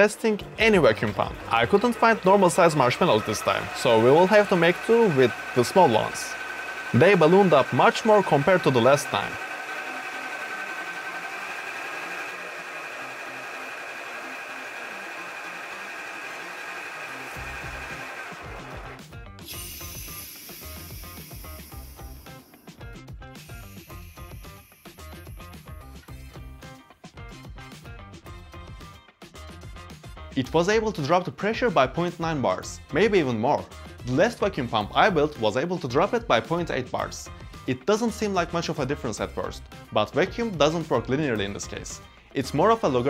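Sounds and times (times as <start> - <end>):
background music with low beat: 0.0 - 10.5, 12.8 - 31.1
compressor motor whining: 0.6 - 26.6.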